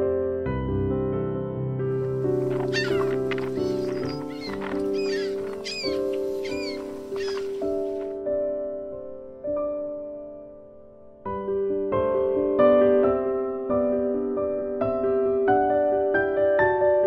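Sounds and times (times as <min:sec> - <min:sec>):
soft piano music: 0:00.0 - 0:17.0
bird calling: 0:02.1 - 0:08.2.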